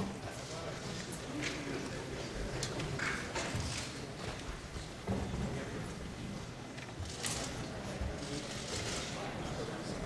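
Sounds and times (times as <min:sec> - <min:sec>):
low murmur of voices: 0:00.0 - 0:10.0.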